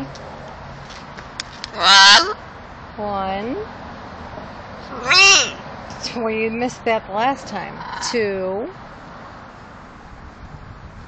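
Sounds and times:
macaw call: 1.8s - 2.4s, 4.9s - 5.6s.

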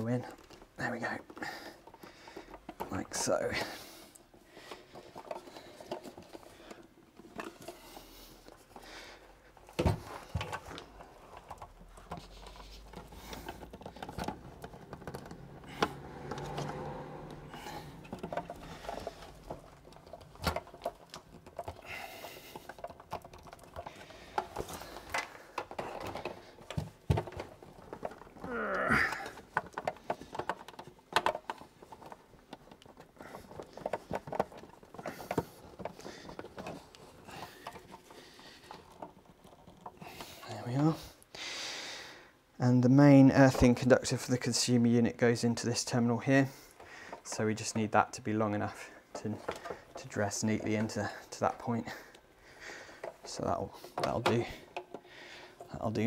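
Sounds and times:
hands working cables into plastic box: 0.0s - 41.3s, 43.0s - 56.0s.

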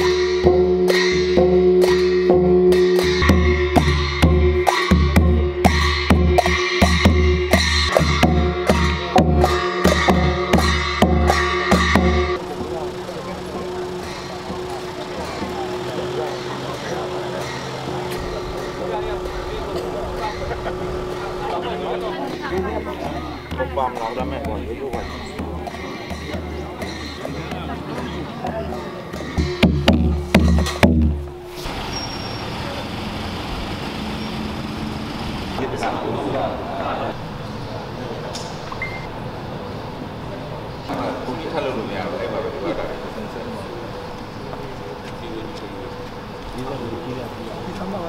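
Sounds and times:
gongs ringing tone: 0.0s - 27.4s
hand cymbals clashing: 0.0s - 32.8s
low hand drum beat: 0.5s - 17.2s, 22.3s - 31.4s
background chatter of people: 7.9s - 33.2s, 35.6s - 48.0s.

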